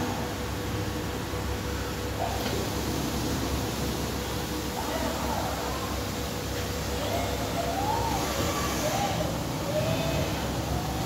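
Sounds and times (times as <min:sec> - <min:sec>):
workshop hum: 0:00.0 - 0:11.0.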